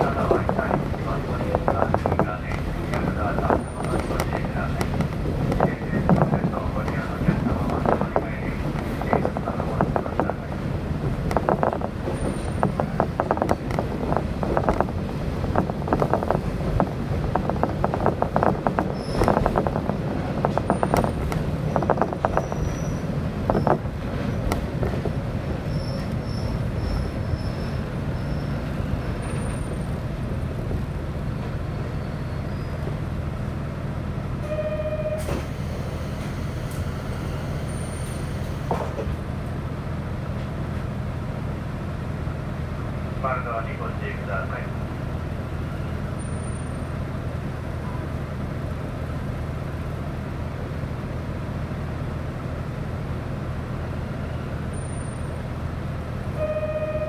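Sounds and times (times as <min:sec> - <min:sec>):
railcar rattling over rails: 0:00.0 - 0:57.0
high brake squeals: 0:18.9 - 0:19.3, 0:22.4 - 0:23.7, 0:25.6 - 0:30.0, 0:31.9 - 0:32.9, 0:34.4 - 0:38.7, 0:46.2 - 0:46.9, 0:54.7 - 0:55.4
short electronic tone: 0:56.4 - 0:57.0.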